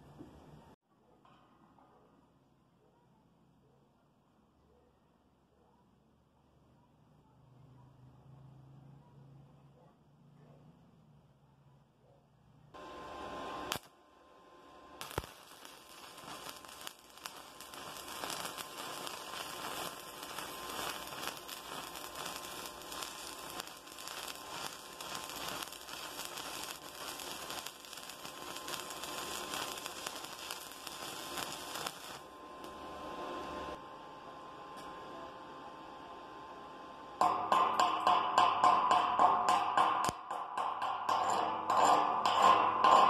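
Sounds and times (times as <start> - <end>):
welding arc crackling: 12.8 - 33.8
welding arc striking clicks: 13.2 - 14.0, 15.0 - 32.8, 37.2 - 43.0.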